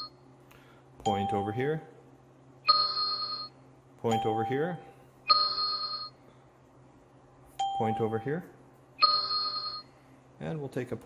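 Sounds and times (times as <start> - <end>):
electronic beep: 9.0 - 9.9.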